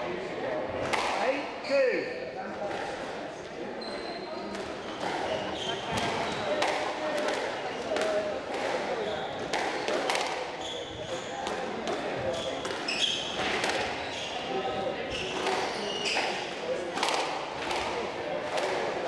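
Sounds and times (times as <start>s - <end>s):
shoes squeaking on wooden floor: 3.8s - 6.6s, 12.3s - 13.4s, 15.1s - 16.3s.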